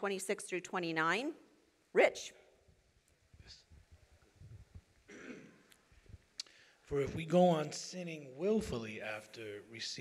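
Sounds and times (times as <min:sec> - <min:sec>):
man clearing his throat: 0:05.1 - 0:05.7
man reading aloud: 0:06.9 - 0:10.0.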